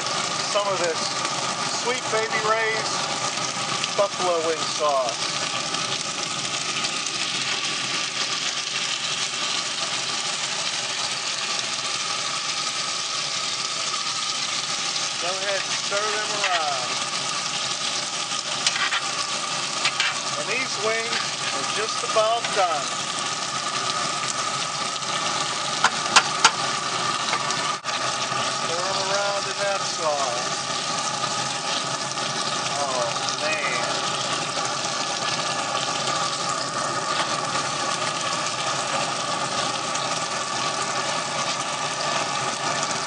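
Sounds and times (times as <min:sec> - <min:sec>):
chicken wings sizzling in skillet: 0:00.0 - 0:43.0
grill fan humming: 0:00.0 - 0:43.0
tongs stirring wings: 0:14.9 - 0:17.1, 0:18.4 - 0:23.3.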